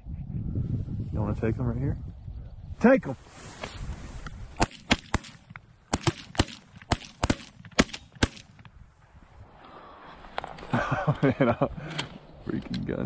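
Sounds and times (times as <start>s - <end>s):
shotguns firing: 4.6s - 8.6s.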